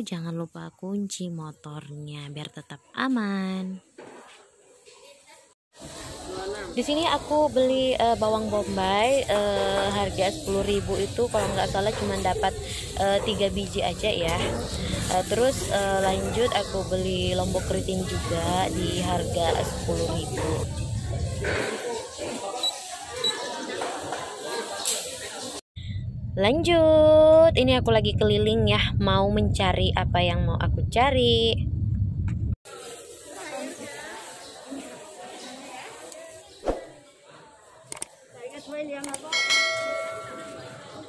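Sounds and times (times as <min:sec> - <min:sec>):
indistinct voices: 0:06.0 - 0:25.6
bright bell chime: 0:39.3 - 0:40.8.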